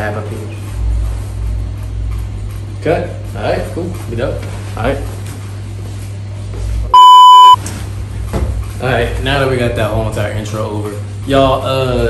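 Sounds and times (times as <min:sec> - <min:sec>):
low room hum: 0:00.0 - 0:12.0
electronic censor bleep: 0:07.0 - 0:07.6.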